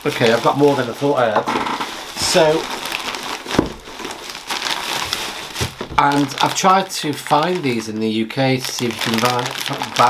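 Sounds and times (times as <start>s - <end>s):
plastic and bubble wrap crinkling: 0.0s - 10.0s.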